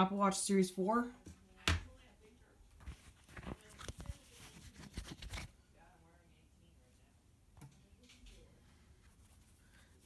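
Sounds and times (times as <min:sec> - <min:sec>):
cloth rustling against microphone: 0:02.7 - 0:05.6, 0:08.8 - 0:10.0.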